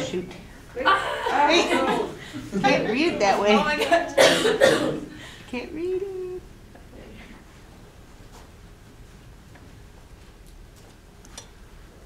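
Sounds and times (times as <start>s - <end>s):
people talking: 0.0s - 7.3s
person coughing: 4.2s - 5.2s.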